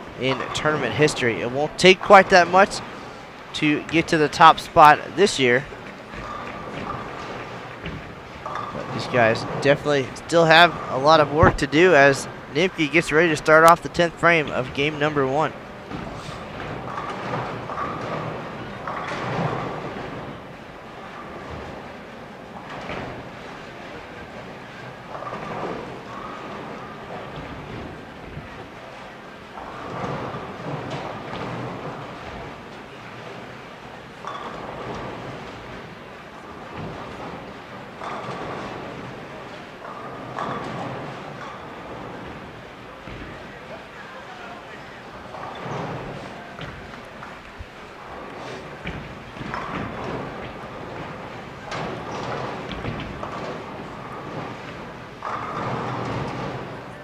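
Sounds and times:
bowling balls rolling: 0.0s - 57.0s
bowling pins crashing: 0.0s - 57.0s
murmur of crowd voices: 41.4s - 57.0s.

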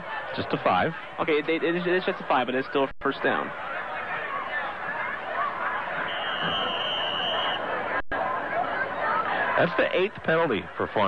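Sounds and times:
crowd chatter: 0.0s - 11.0s
referee's whistle blast: 6.0s - 7.6s.

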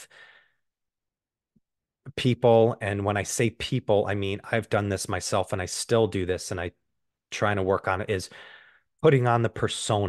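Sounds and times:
faint breath: 0.0s - 0.6s, 8.3s - 8.9s.

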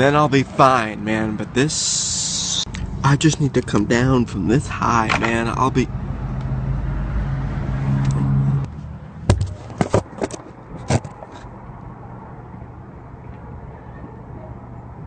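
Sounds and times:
vehicle engine hum: 0.0s - 15.0s.

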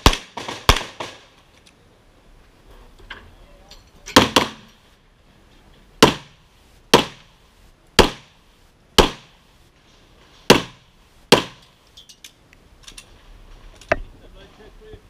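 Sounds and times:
pistol shots: 0.0s - 1.2s, 6.0s - 7.3s, 8.0s - 8.4s, 9.0s - 9.3s, 10.5s - 11.6s.

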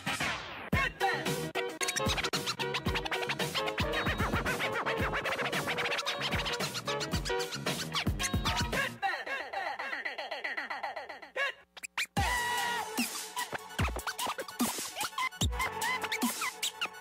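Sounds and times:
hip-hop beat with heavy kick: 0.0s - 9.0s, 12.2s - 17.0s
turntable scratching: 0.0s - 9.0s, 11.6s - 17.0s.

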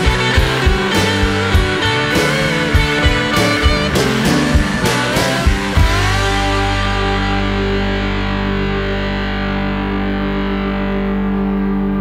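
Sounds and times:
distorted electric guitars sustained chord: 0.0s - 12.0s.

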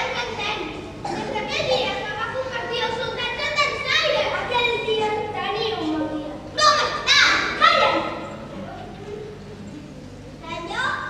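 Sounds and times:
children speaking: 0.0s - 11.0s.

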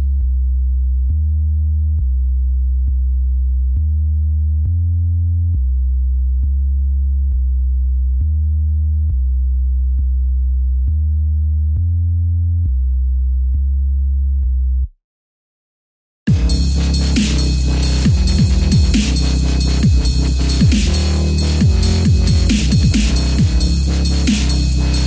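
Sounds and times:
synth sub-bass notes: 0.0s - 14.9s, 16.3s - 25.0s.

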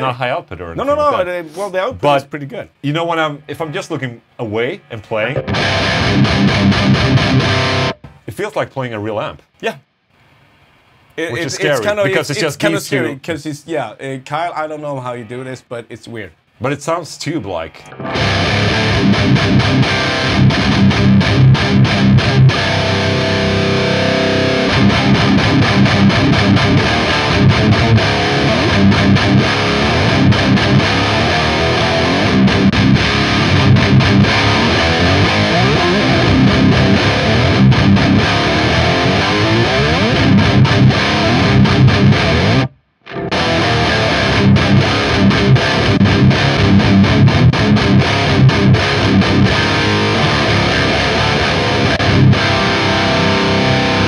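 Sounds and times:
distorted electric guitar riffing: 4.8s - 8.2s, 17.8s - 54.0s.

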